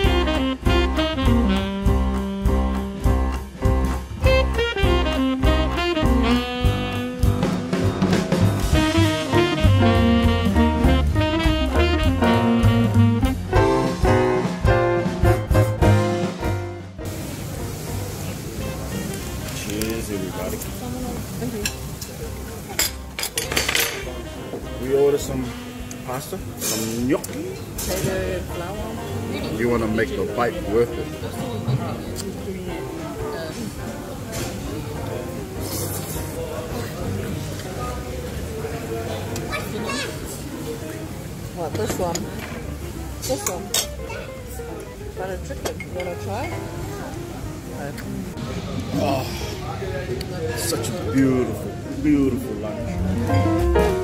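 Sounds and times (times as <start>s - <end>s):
background music: 0.0s - 54.0s
indistinct voices: 48.2s - 51.8s.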